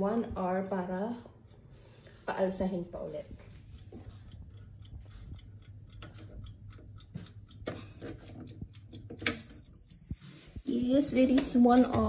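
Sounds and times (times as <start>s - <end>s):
low steady hum: 0.0s - 12.0s
clock-like ticking: 1.2s - 12.0s.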